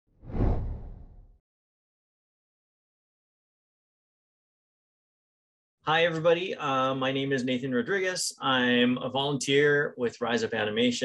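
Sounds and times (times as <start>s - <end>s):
whoosh with deep rumble: 0.2s - 1.3s.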